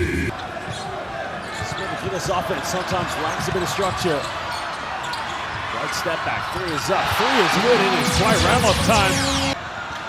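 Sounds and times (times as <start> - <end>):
crowd cheering: 4.5 - 10.0
music: 7.9 - 9.6.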